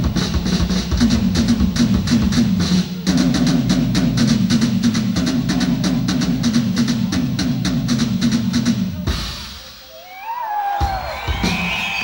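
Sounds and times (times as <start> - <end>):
drum kit played fast: 0.0 - 9.9, 10.7 - 12.0.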